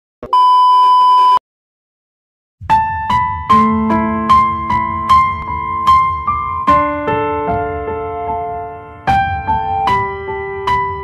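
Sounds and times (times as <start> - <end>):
high-pitched test-tone beep: 0.2 - 1.4.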